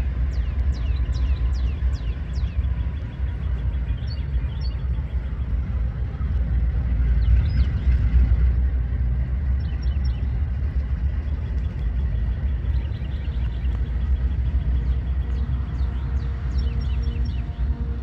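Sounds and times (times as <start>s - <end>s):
diesel locomotive engine rumble: 0.0s - 18.0s.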